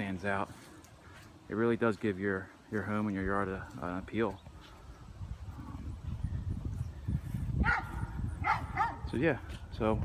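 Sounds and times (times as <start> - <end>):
dog barking: 7.6 - 9.1.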